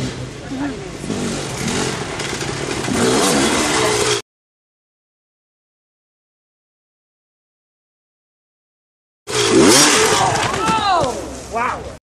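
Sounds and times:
dirt bike engine revving: 0.0s - 4.2s, 9.3s - 10.7s
spectators' voices: 9.7s - 12.0s.

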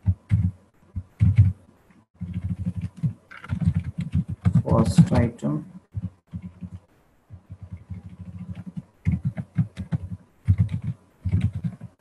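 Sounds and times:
keyboard typing: 0.0s - 1.6s, 2.2s - 12.0s.

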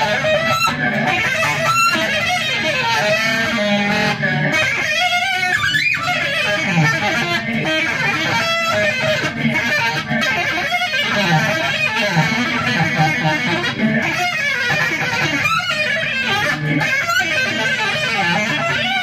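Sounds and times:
saxophone through effects pedals: 0.0s - 19.0s.

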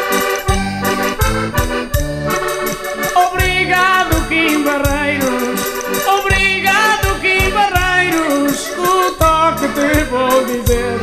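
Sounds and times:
button accordion playing: 0.0s - 11.0s
light percussion: 0.0s - 11.0s
steady low beat: 0.0s - 11.0s.

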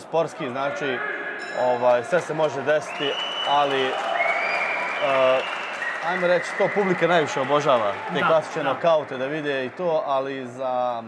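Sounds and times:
audience applauding: 2.2s - 10.5s
man's voice: 6.7s - 11.0s.

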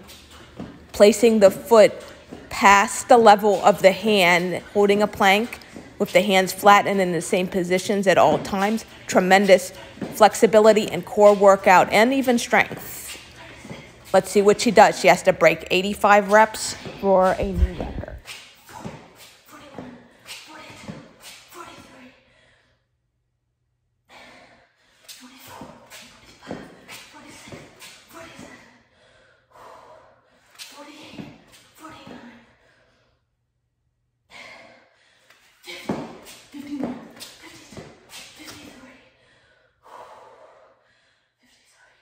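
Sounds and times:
woman breathing hard: 28.4s - 31.2s, 34.3s - 36.0s, 38.8s - 42.0s.

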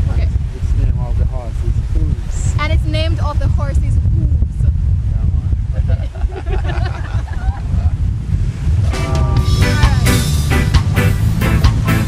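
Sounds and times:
wind buffeting microphone: 0.0s - 12.0s
laughter: 5.8s - 8.0s
music: 8.9s - 12.0s.

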